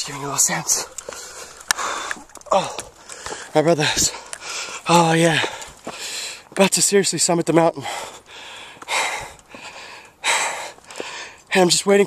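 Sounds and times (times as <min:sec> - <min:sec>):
man breathing hard: 0:00.9 - 0:06.5, 0:07.8 - 0:11.5.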